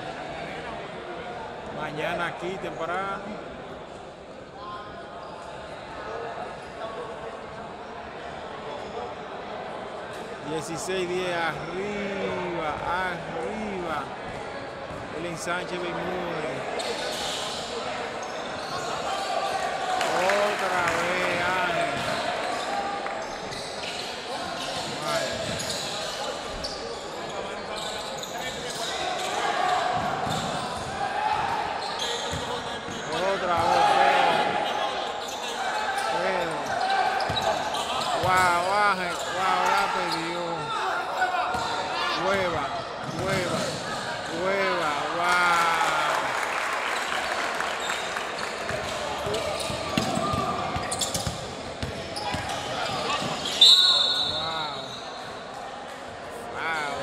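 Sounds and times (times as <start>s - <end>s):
players and spectators calling out: 15.1s - 55.6s
basketball bouncing on court: 43.0s - 43.8s, 48.7s - 53.5s
referee whistle blast: 53.6s - 54.8s.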